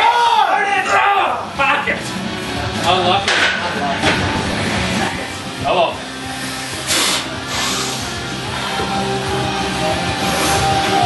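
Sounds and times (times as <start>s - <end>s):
rock music with guitar: 1.4s - 11.0s.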